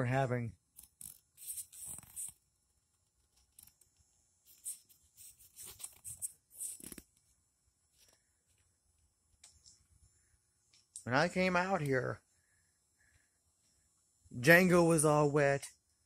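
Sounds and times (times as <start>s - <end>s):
faint rustles and ticks: 0.8s - 11.1s.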